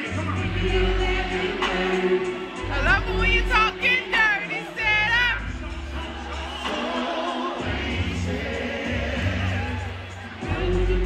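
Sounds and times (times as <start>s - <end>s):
heavy bass: 0.0s - 7.0s, 7.6s - 11.0s
live concert music over loudspeakers: 0.0s - 11.0s
sung vocal line: 0.0s - 11.0s.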